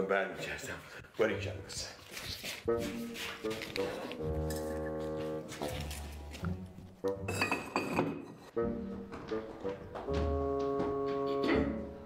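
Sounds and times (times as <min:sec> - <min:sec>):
background music: 0:00.0 - 0:12.0
ceramic jugs clinking: 0:07.1 - 0:08.5.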